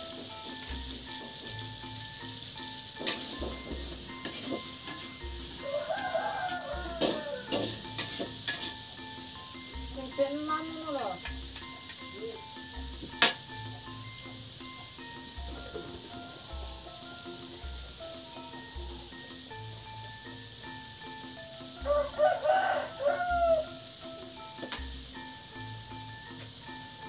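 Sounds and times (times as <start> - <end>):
background music with steady beat: 0.0 - 27.0
food sizzling in a wok: 0.0 - 27.0
rooster crowing: 5.6 - 7.8, 15.6 - 17.0, 21.8 - 23.9.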